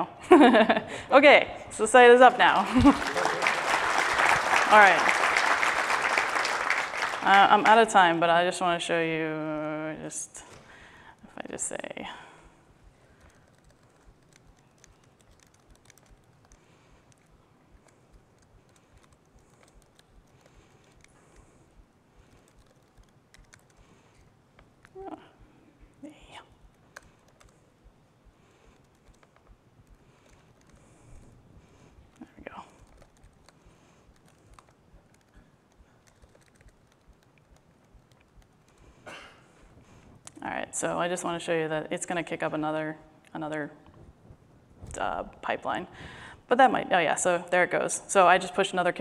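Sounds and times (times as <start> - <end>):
keyboard key clicks: 13.2 - 21.1, 32.8 - 38.5.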